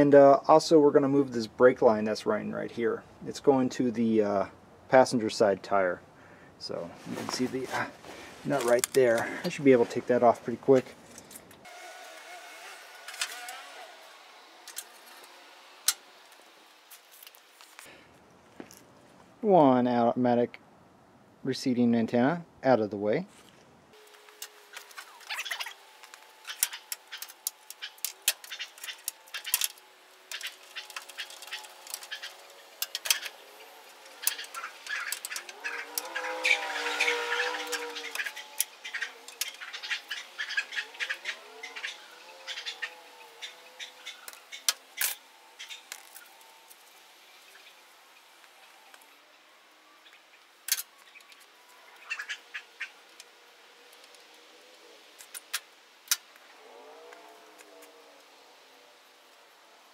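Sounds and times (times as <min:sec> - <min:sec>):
squeaky chirping sounds: 0:24.5 - 0:48.7.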